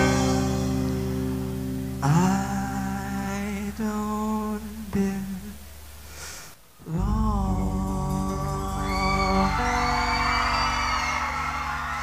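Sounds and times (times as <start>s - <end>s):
man singing long wordless notes: 2.0s - 5.6s, 6.8s - 11.6s
low steady note: 7.0s - 9.7s.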